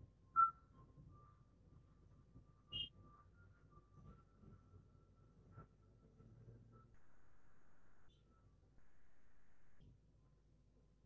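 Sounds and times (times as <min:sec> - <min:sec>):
faint high tone: 0:08.8 - 0:09.8.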